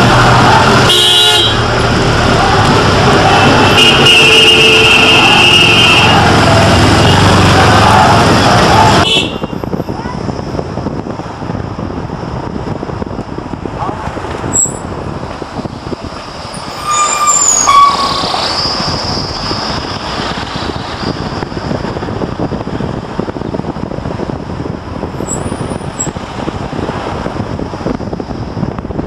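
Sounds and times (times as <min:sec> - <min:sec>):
vehicle road and engine noise: 0:00.0 - 0:29.0
wind on microphone: 0:06.0 - 0:29.0
brief squeal: 0:14.5 - 0:14.8, 0:16.6 - 0:19.7.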